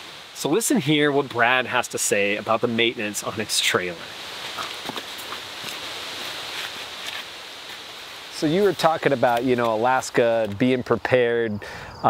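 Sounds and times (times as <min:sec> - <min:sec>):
forest background hiss: 0:00.0 - 0:12.0
footsteps on dirt and rock: 0:04.4 - 0:10.6.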